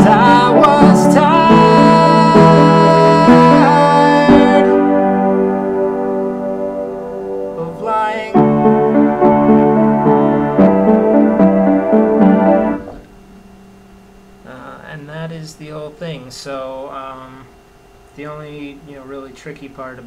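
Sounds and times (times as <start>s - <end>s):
person singing: 0.0s - 4.9s, 7.6s - 8.8s
piano chords: 0.0s - 13.6s.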